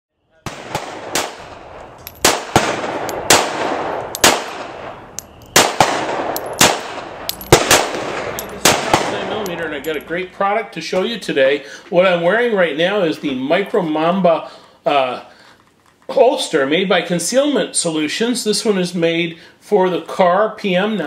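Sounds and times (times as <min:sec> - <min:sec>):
gunshots with echo: 0:00.5 - 0:09.9
steady background noise: 0:00.7 - 0:17.4.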